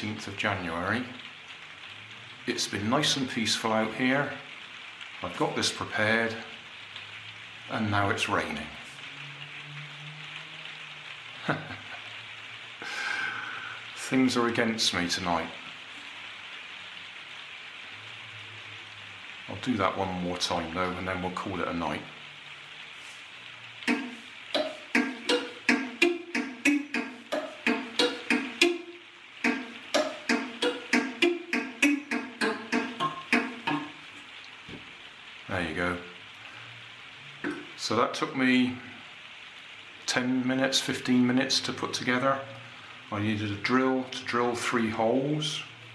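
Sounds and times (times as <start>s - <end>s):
rain falling: 0.0s - 45.9s
thumb piano twanging notes: 23.9s - 34.0s.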